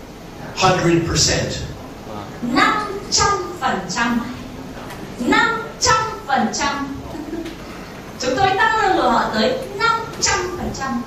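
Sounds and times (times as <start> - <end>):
woman speaking: 2.4 - 4.5, 5.2 - 7.6, 8.2 - 11.0.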